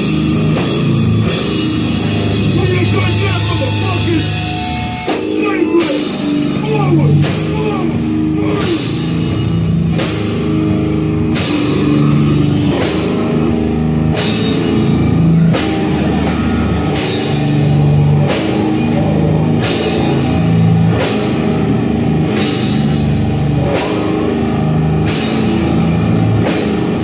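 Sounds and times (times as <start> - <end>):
distorted guitar riff: 0.0 - 27.0
drum kit: 0.0 - 27.0.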